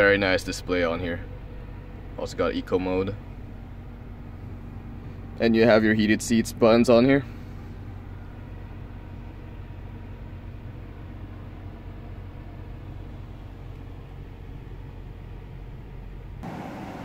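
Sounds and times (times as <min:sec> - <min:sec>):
climate fan humming in car: 0:00.0 - 0:17.0.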